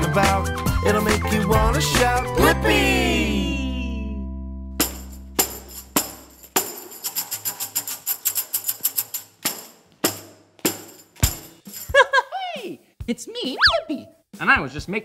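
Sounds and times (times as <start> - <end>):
tambourine hits and shakes: 4.8 - 12.2.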